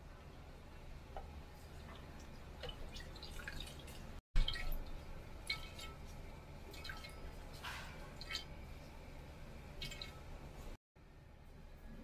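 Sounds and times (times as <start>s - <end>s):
liquid dripping through strainer into pot: 1.2s - 8.8s, 9.7s - 10.5s.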